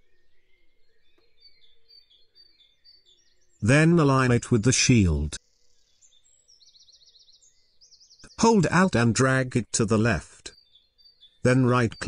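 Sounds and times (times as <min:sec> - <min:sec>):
faint bird chirping: 0:00.0 - 0:12.0.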